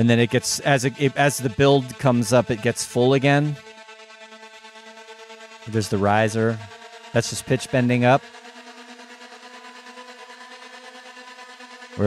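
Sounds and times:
gated synth drone: 0:00.0 - 0:12.0.

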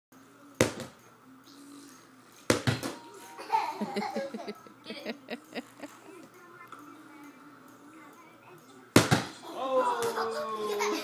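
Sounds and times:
people laughing: 0:03.4 - 0:06.1, 0:09.8 - 0:11.0.

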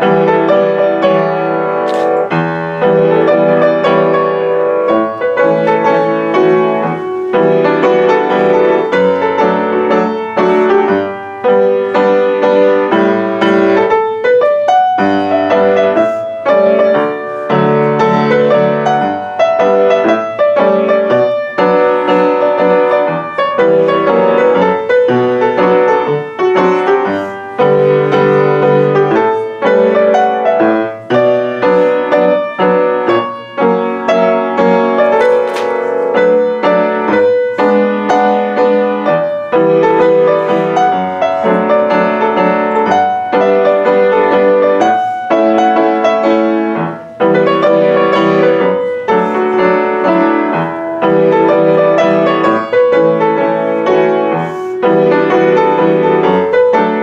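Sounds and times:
solo upright piano: 0:00.0 - 0:57.0.

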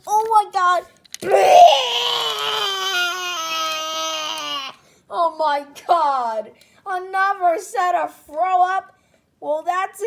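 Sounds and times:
child making vomiting noise: 0:01.2 - 0:04.8.

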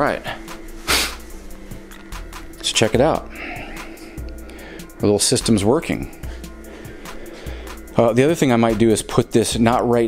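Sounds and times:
low drone: 0:00.0 - 0:08.2
cooling fans running: 0:00.0 - 0:10.0
steady tones: 0:00.0 - 0:10.0.

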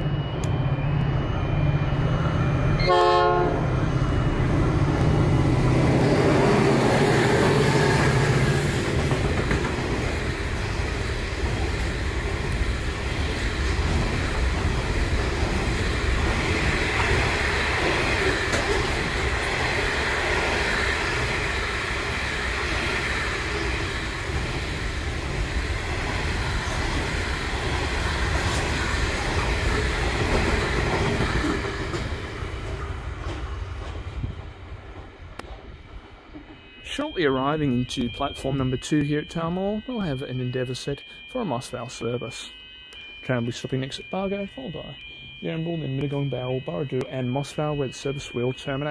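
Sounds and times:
diesel locomotive engines droning: 0:00.0 - 0:48.9
train wheels clattering: 0:06.5 - 0:21.6.

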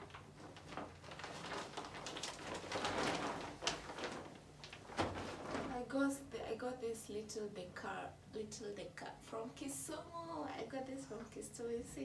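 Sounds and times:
cloth bag rustling: 0:00.1 - 0:05.9.

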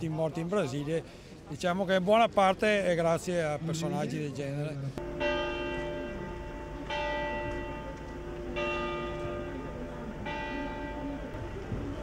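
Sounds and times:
church bell tolling: 0:05.0 - 0:12.0.

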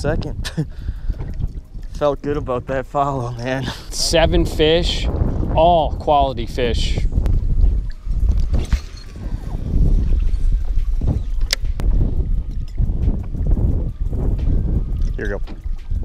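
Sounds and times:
wind rumbling on microphone: 0:00.0 - 0:16.0
water lapping against boat: 0:00.8 - 0:05.4, 0:07.0 - 0:13.6
fishing reel clicks and knocks: 0:11.2 - 0:13.4.

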